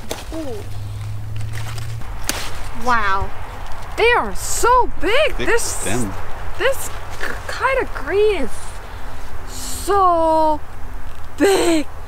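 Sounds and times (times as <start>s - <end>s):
leaf snapping: 0.0s - 2.8s
low steady hum: 0.0s - 12.0s.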